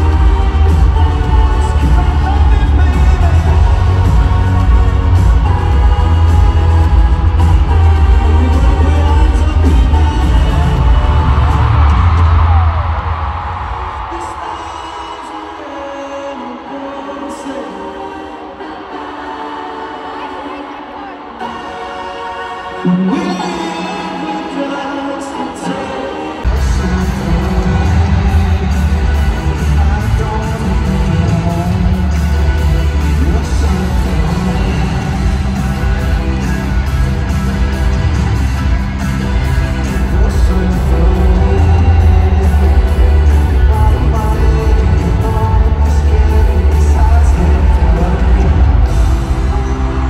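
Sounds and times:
live pop concert music: 0.0s - 50.0s.

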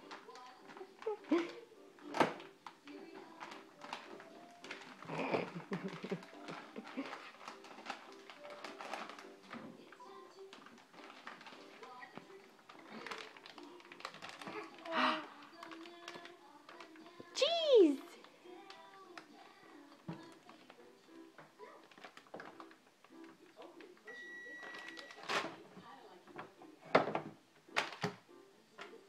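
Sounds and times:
faint background music: 0.0s - 29.0s.

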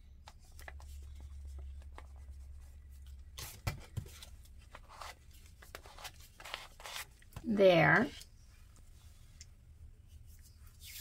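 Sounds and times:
paper rustling and tapping: 3.0s - 7.5s.

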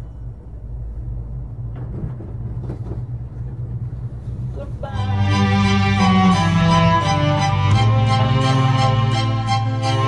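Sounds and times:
gondola cabin rumbling: 0.0s - 10.0s
faint clacks: 1.7s - 4.4s.

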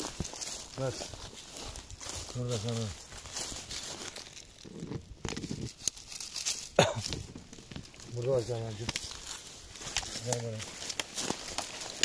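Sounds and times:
dry grass crackling and tearing: 0.0s - 12.0s.

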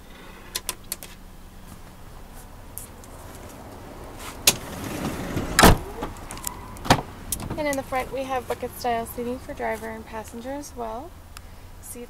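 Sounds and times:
heavy car door shutting: 3.4s - 8.7s.

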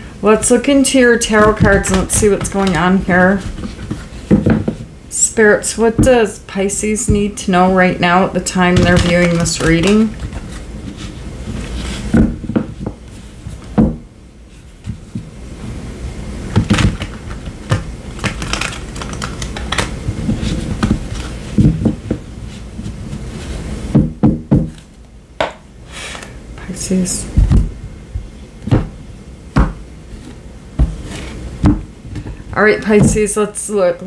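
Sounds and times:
cards being shuffled: 1.3s - 4.6s, 8.7s - 13.7s, 16.6s - 23.6s.

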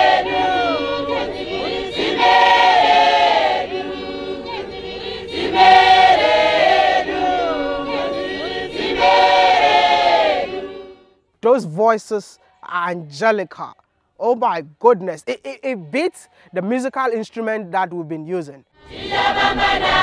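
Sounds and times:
congregation singing a hymn: 0.0s - 11.1s, 18.8s - 20.0s.

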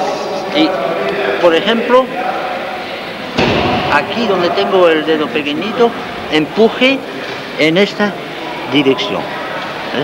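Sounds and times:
dull thump with rough noise: 3.4s - 4.0s.

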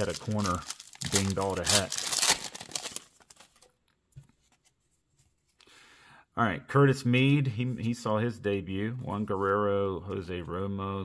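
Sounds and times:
foil wrapper tearing and crinkling: 0.0s - 3.6s.

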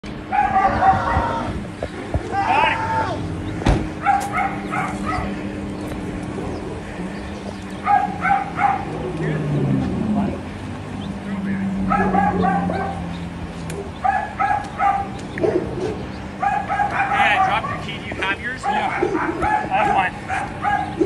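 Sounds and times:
dog barking: 0.3s - 1.2s, 4.0s - 5.3s, 7.8s - 9.0s, 11.8s - 13.1s, 13.8s - 18.0s, 18.6s - 21.0s.

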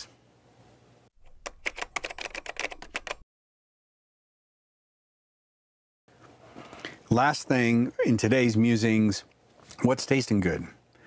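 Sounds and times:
typewriter keystrokes clicking: 1.2s - 3.2s.

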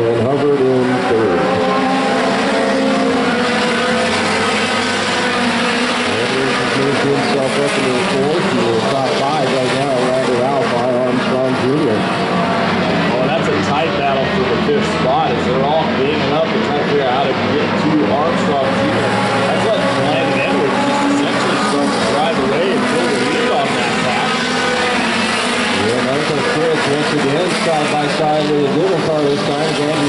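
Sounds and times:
race car engines passing: 0.0s - 30.0s.

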